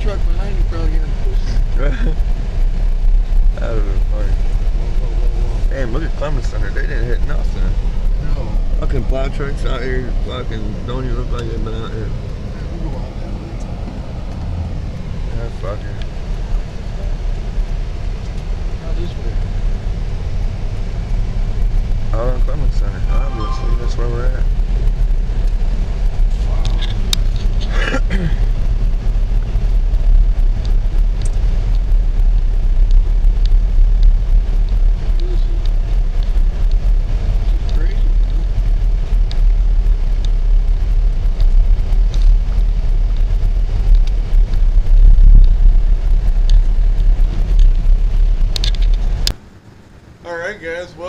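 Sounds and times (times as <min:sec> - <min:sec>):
car engine and tyre noise: 0:00.0 - 0:51.0.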